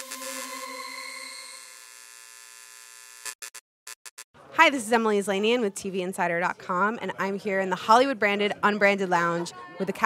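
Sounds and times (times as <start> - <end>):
electronic synth hum: 0.0 - 3.4.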